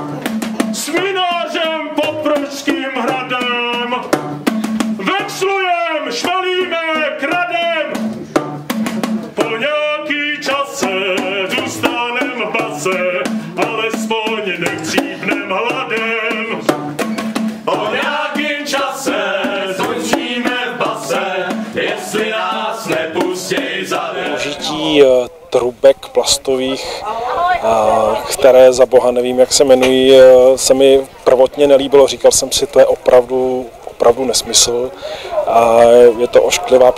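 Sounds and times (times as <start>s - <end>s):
plastic tubes struck rhythmically: 0.0s - 24.8s
voices singing: 0.0s - 36.9s.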